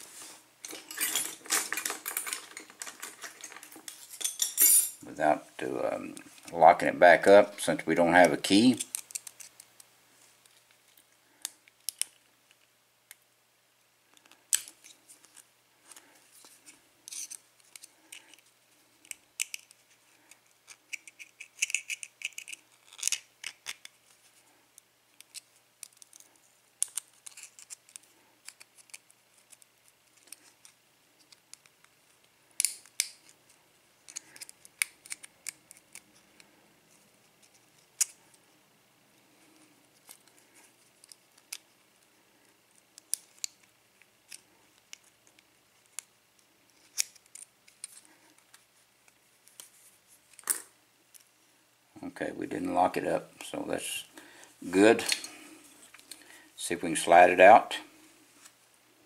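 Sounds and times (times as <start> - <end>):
lock pick clicking and scraping: 8.8 - 9.6, 17.1 - 18.4, 19.0 - 24.0, 25.2 - 31.7, 32.6 - 33.4, 34.0 - 36.2, 37.4 - 38.2.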